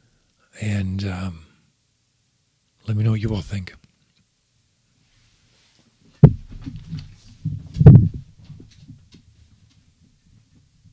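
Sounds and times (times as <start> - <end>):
low thump: 6.2 - 8.3.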